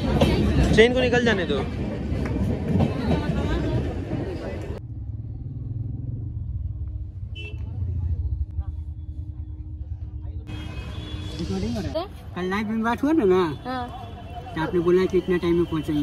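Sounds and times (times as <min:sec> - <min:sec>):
crowd hubbub on platform: 0:00.0 - 0:04.8, 0:07.4 - 0:16.0.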